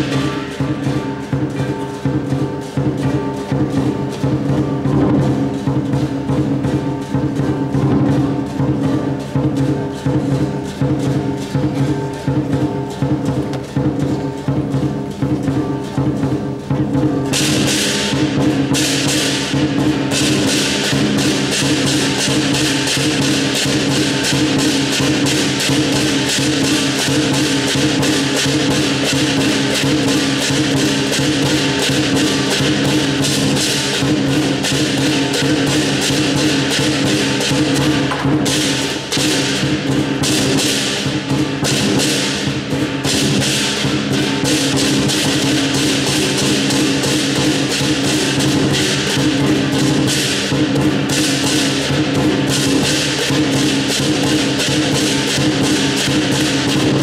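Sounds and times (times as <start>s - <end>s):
big drum beating: 0.0s - 57.0s
cymbals clashing: 0.0s - 57.0s.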